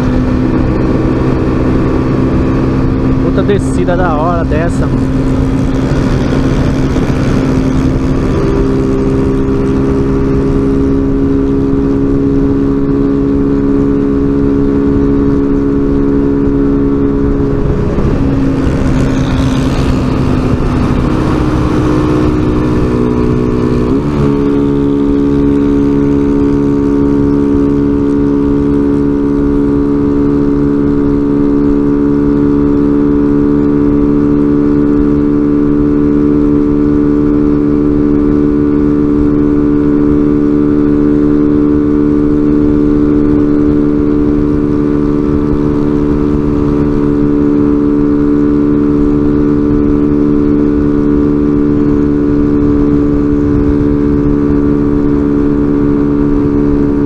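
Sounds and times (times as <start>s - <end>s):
rush of noise: 0.0s - 12.0s, 12.7s - 31.7s
motorcycle engine cruising: 0.0s - 57.0s.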